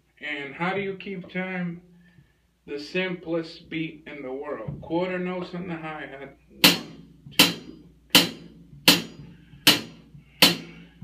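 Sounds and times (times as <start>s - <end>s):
hi-hat struck with drumstick: 6.6s - 11.0s.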